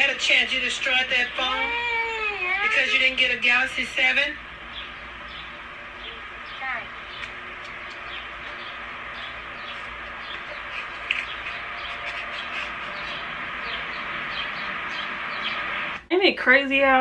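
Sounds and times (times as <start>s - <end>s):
outdoor background hiss: 0.0s - 17.0s
small birds chirping: 0.3s - 16.0s.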